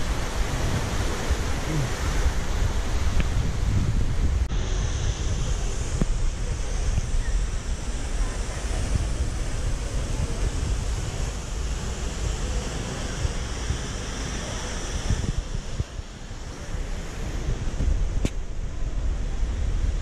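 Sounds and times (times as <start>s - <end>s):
running fountain water: 0.0s - 20.0s
wind buffeting microphone: 0.0s - 20.0s.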